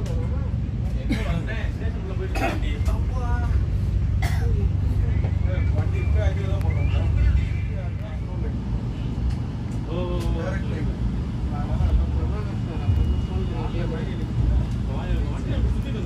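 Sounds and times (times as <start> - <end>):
train coach rumble: 0.0 - 16.0
voices talking: 0.0 - 16.0.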